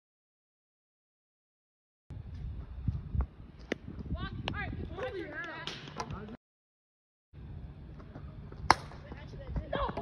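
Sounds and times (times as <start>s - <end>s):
bat hitting plastic ball: 8.7s - 9.0s.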